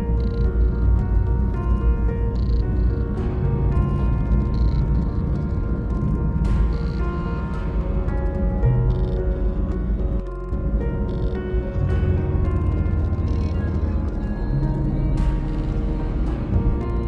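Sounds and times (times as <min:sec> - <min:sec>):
steady deep bass: 0:00.0 - 0:17.0.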